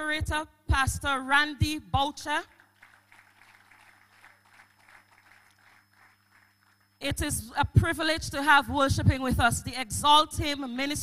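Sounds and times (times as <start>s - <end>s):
faint electrical hum: 0.0s - 11.0s
faint scattered applause: 2.5s - 7.0s.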